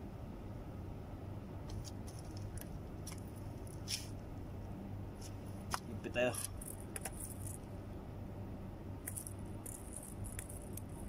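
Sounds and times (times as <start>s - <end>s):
fishing reel jingling and rattling: 9.1s - 11.0s.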